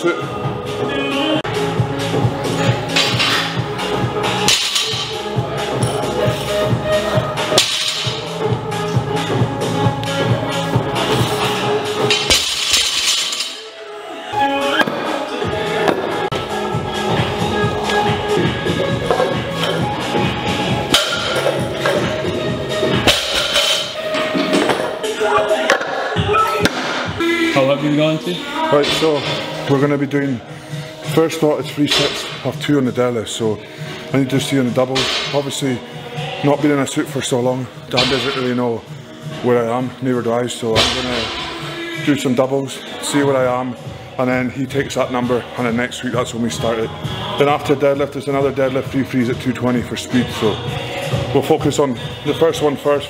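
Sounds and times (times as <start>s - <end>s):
music with rhythmic beat: 0.3s - 13.7s, 14.4s - 27.8s.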